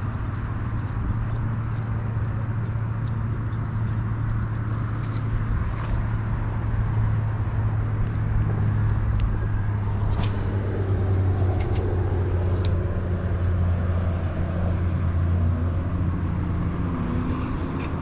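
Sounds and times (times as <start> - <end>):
low drone of road traffic: 0.0 - 18.0.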